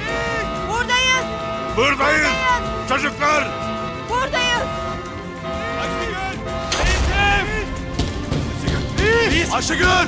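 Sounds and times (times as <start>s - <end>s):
dramatic background music: 0.0s - 10.0s
gunshot bang: 6.7s - 7.3s.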